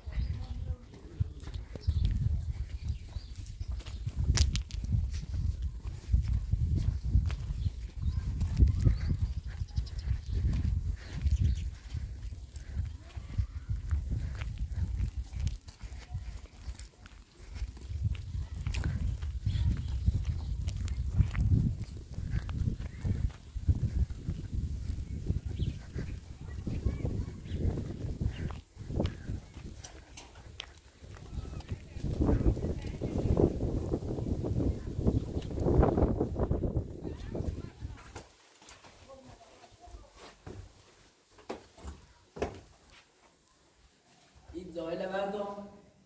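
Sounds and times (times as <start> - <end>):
wind buffeting microphone: 0.0 - 38.2
footsteps crunching on stony road: 0.0 - 45.0.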